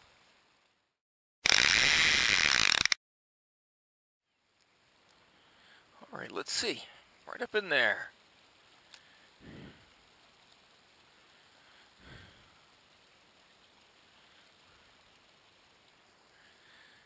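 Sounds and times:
faint steady hiss: 4.3 - 17.0.

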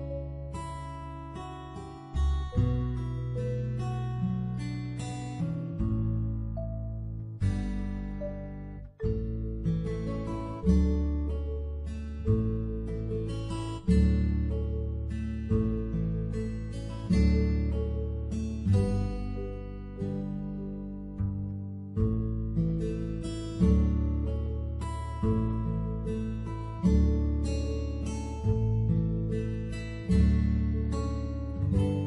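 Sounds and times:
acoustic guitar chords strummed: 0.0 - 32.0.

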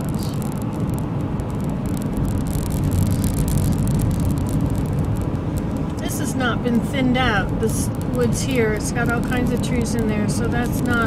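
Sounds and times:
car road noise inside cabin: 0.0 - 11.0.

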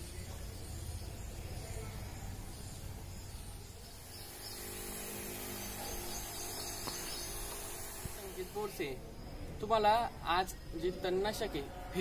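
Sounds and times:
even high outdoor hiss: 0.0 - 12.0.

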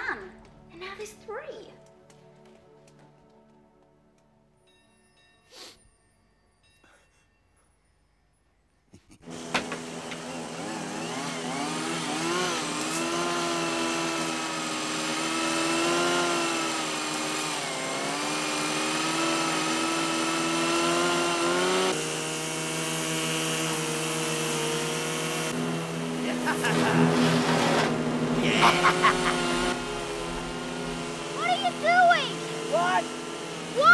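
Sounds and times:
small petrol engines revving: 9.2 - 33.9
wood chipper: 9.2 - 33.9.

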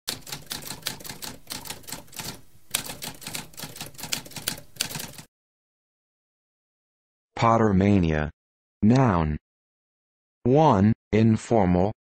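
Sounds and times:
typewriter keys clicking: 0.1 - 5.3.

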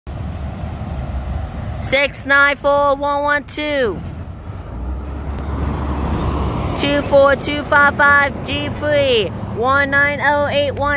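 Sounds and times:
truck driving slowly past: 0.1 - 10.9.

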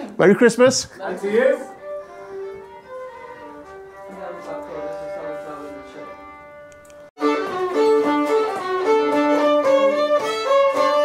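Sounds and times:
person speaking: 0.0 - 1.8
fiddle playing slow tune: 1.0 - 11.0.

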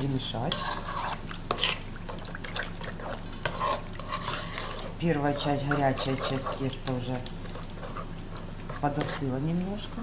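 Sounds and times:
batter sloshing: 0.0 - 10.0.

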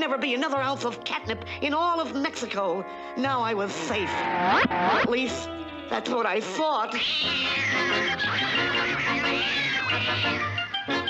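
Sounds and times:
cartoon cats yowling and screeching: 6.9 - 10.8
orchestral music: 7.5 - 11.0.

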